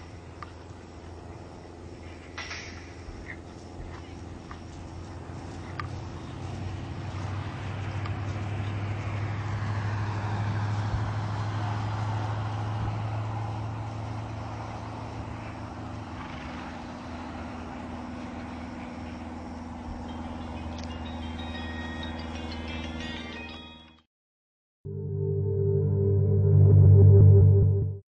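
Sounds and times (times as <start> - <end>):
low motor hum: 0.0 - 23.2, 24.9 - 28.0.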